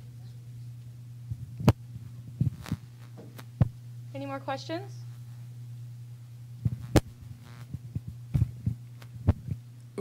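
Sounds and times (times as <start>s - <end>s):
low electrical hum: 0.0s - 10.0s
microphone handling knocks: 1.3s - 3.8s, 6.6s - 9.6s.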